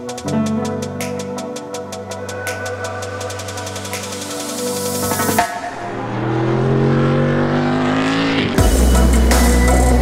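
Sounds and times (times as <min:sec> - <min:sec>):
race car engine accelerating: 0:05.4 - 0:10.0.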